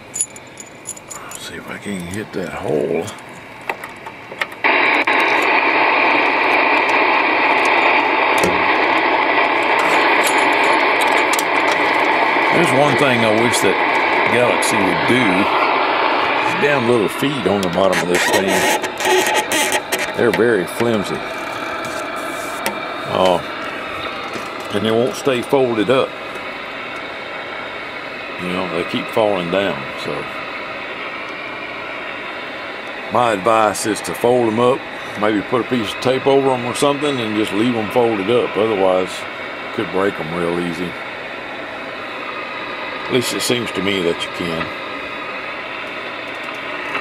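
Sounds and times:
radio static hiss: 1.1 - 47.0.

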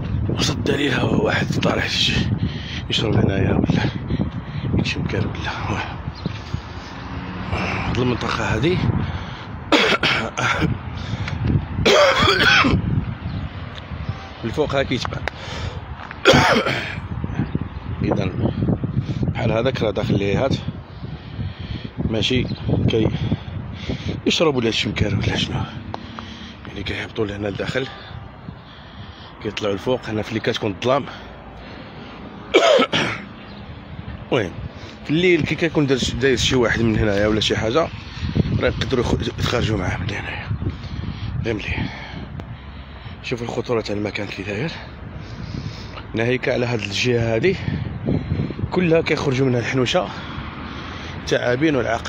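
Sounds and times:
outdoor background noise: 0.0 - 52.0
loud cough: 9.7 - 10.7, 11.8 - 12.8, 16.2 - 17.0, 32.5 - 33.3
person clearing throat: 9.7 - 10.7, 11.9 - 12.8, 16.2 - 17.0, 32.5 - 33.3.

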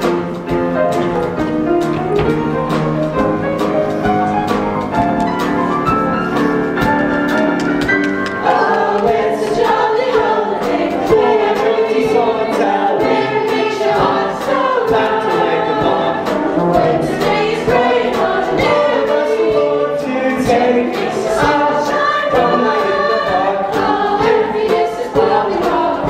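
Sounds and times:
instrumental accompaniment with beat: 0.0 - 26.0
chorus singing show tune: 8.4 - 26.0.

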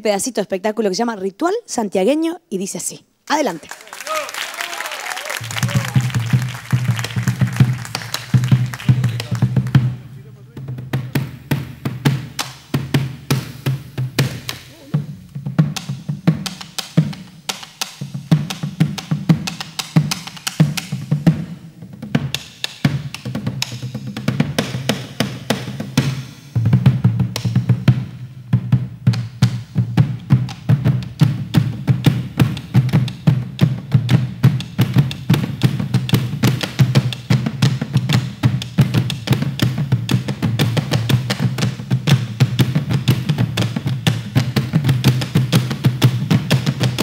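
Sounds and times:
frame drums played with sticks: 5.4 - 47.0.

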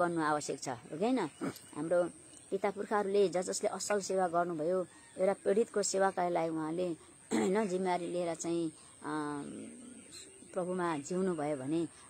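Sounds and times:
woman speaking: 0.0 - 12.0.

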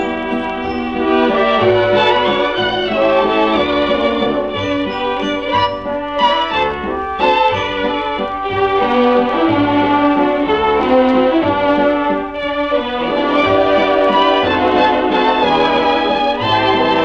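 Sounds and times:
orchestral waltz music: 0.0 - 17.0.

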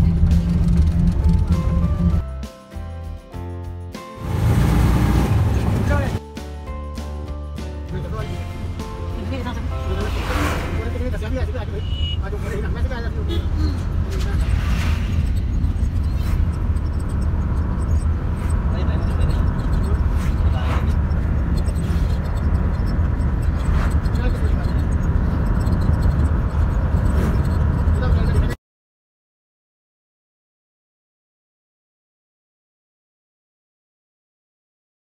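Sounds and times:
bus engine and road rumble: 0.0 - 2.4, 4.1 - 6.2, 7.0 - 28.6.

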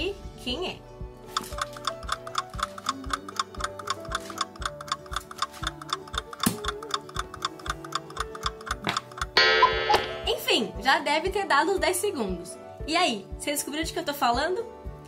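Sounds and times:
clock ticking: 1.3 - 10.7.

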